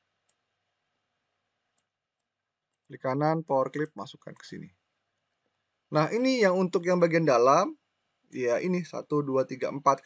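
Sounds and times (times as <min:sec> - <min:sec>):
computer mouse clicks: 0:01.7 - 0:02.9, 0:03.7 - 0:04.6.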